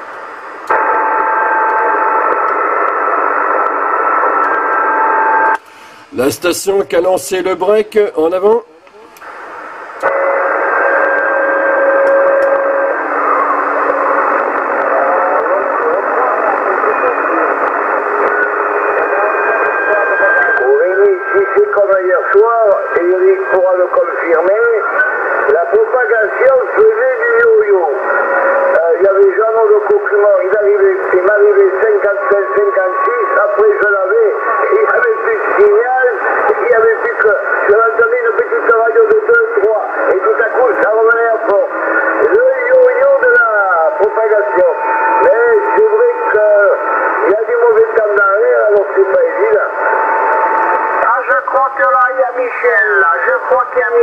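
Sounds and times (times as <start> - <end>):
radio static hiss: 0.0 - 54.0
garbled radio voice: 6.1 - 9.2, 14.6 - 50.0, 51.0 - 54.0.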